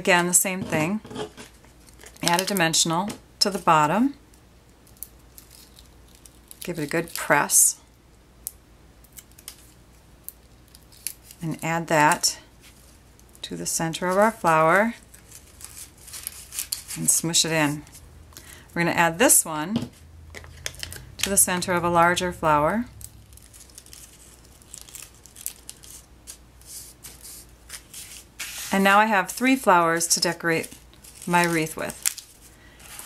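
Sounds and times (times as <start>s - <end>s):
small paper crackles: 4.9s - 7.3s, 9.1s - 11.4s, 14.0s - 18.0s, 23.0s - 33.0s
cardstock rustling and crinkling: 14.0s - 18.0s, 22.0s - 33.0s.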